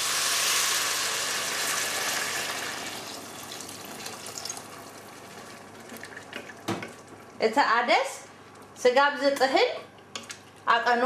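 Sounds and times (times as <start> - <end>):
water pouring into frying pot: 0.0 - 6.4.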